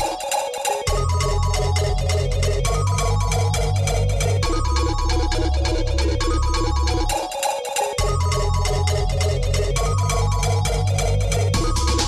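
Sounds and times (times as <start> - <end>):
electronic dance music: 0.0 - 12.0.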